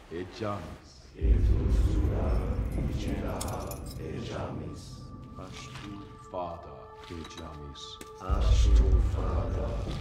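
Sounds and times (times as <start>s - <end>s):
deep low rumble: 1.2s - 5.8s
metal ring jingling: 2.7s - 4.1s.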